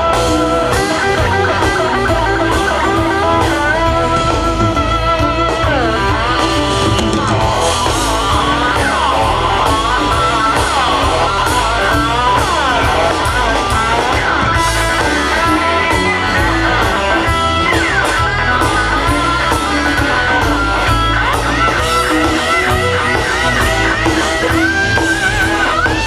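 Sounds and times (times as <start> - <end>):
electric bass line: 0.0 - 26.0
electric guitar lead: 0.0 - 26.0.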